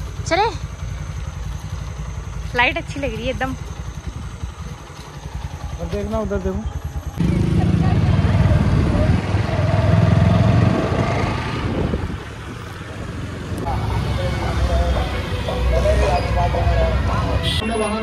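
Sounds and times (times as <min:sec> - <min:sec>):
motorcycle engine: 0:00.0 - 0:18.0
street traffic: 0:00.0 - 0:18.0
wind buffeting microphone: 0:07.6 - 0:13.6.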